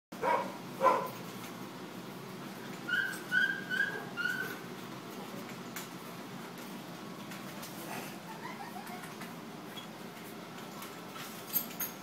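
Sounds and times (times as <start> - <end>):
dog barking: 0.2 - 1.2
dog whining: 2.9 - 4.6.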